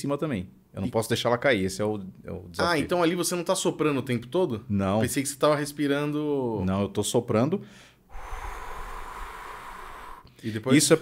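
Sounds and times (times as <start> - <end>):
man blowing breath through lips: 8.1 - 10.4.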